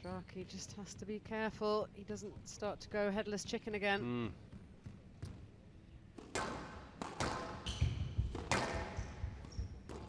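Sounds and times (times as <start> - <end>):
squash ball cracks: 6.1 - 10.0
shoes squeaking on court: 6.5 - 10.0.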